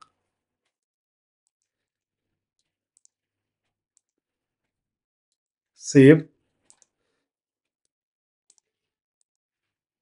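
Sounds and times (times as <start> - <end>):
faint computer mouse clicks: 6.6 - 6.9.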